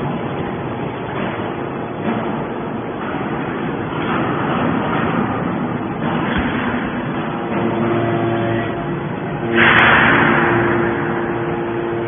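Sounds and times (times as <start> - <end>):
hydraulic baler mechanical drone: 0.0 - 12.0.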